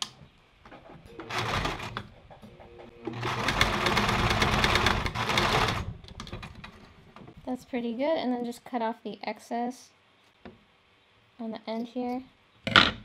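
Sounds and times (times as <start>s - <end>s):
sewing machine stitching: 1.1s - 2.0s, 3.0s - 5.9s.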